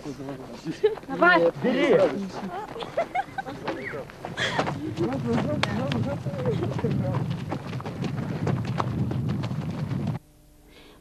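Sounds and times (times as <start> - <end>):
quick footsteps: 0.3 - 10.2
wind rumbling on microphone: 4.3 - 10.2.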